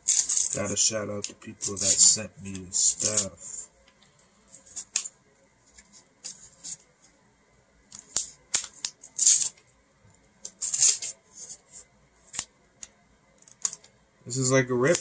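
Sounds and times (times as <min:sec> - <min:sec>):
plastic mailer crinkling: 0:00.0 - 0:03.4.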